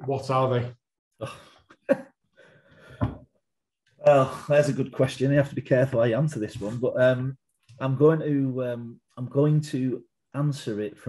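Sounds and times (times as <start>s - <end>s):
man speaking: 0.0s - 1.4s, 4.0s - 11.0s
man laughing: 1.2s - 2.0s, 4.1s - 4.9s
faint breathing: 2.4s - 3.2s.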